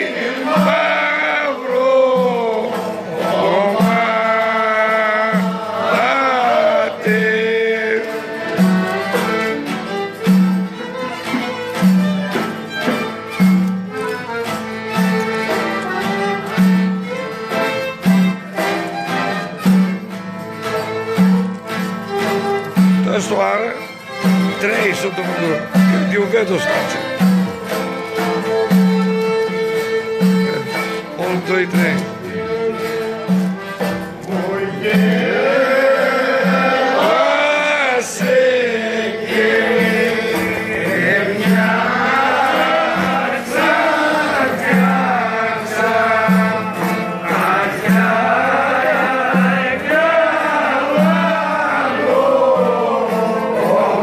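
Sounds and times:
men singing: 0:00.0 - 0:12.2, 0:33.9 - 0:54.0
violin folk dance tune: 0:00.0 - 0:54.0
folk music on clarinet and violin: 0:08.4 - 0:33.9.

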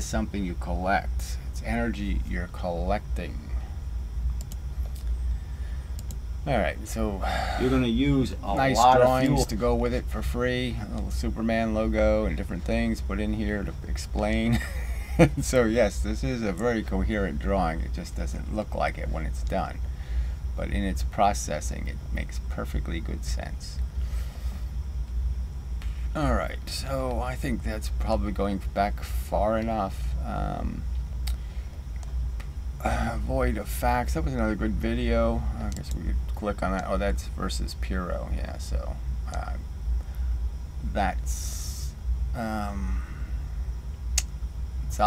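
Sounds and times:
steady low hum: 0:00.0 - 0:45.0
computer mouse clicks: 0:04.4 - 0:05.1, 0:06.0 - 0:06.2.

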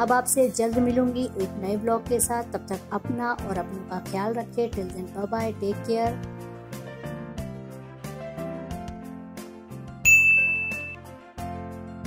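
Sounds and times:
background music: 0:00.0 - 0:12.0
notification bell ding: 0:10.1 - 0:11.0.

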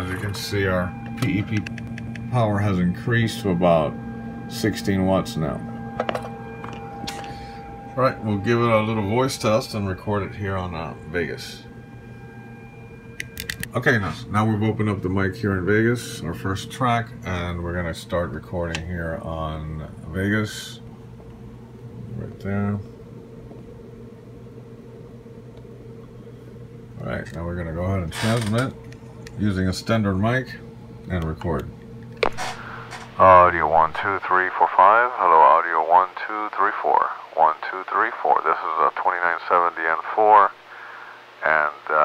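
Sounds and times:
high-pitched test tone: 0:00.0 - 0:15.9
low electrical hum: 0:00.0 - 0:42.0.

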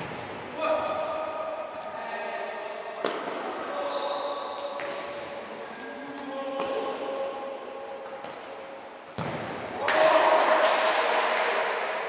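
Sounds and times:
ball kick echoing in hall: 0:00.0 - 0:12.0
players' voices: 0:00.5 - 0:08.3.

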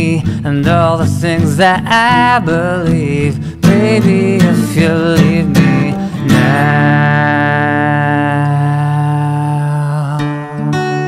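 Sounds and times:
acoustic guitar strumming: 0:00.0 - 0:11.0
man singing long note: 0:04.8 - 0:11.0.

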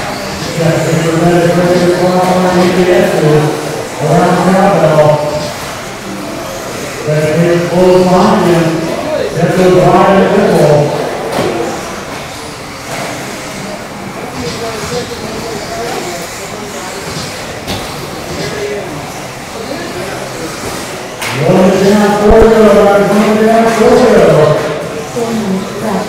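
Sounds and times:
murmur of voices: 0:00.0 - 0:26.0.

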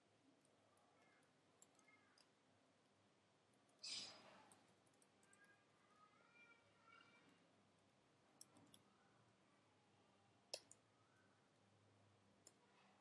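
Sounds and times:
faint keyboard clicks: 0:10.5 - 0:10.8.

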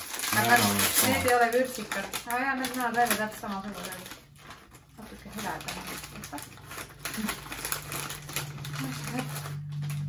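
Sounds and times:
plastic snack bag rustling: 0:00.0 - 0:10.0.

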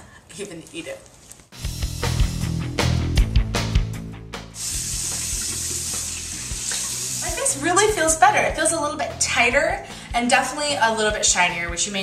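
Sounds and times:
faucet running: 0:01.6 - 0:02.5, 0:04.5 - 0:08.2
background music: 0:01.6 - 0:12.0
water splashing: 0:04.6 - 0:07.6.

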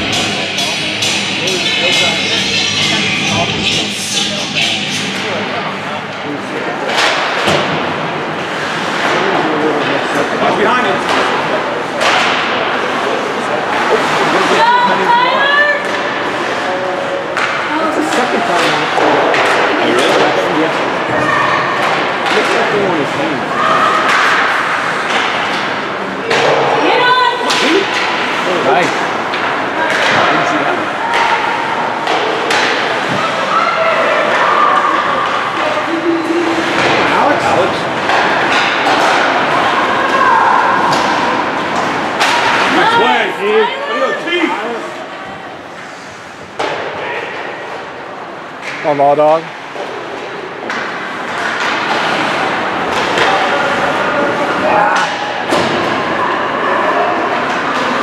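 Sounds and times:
echoing rink noise: 0:00.0 - 0:58.0
pucks and players hitting boards: 0:06.2 - 0:44.4, 0:45.0 - 0:58.0
spectators shouting: 0:18.6 - 0:22.3, 0:26.4 - 0:45.7.

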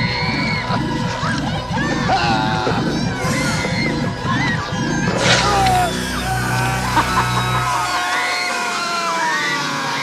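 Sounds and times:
horror film music: 0:00.0 - 0:10.0
people screaming and yelling: 0:00.0 - 0:10.0.

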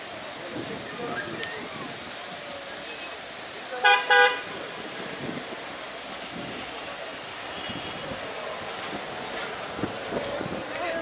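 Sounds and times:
street traffic: 0:00.0 - 0:11.0
vehicle horn toots: 0:03.8 - 0:04.4.

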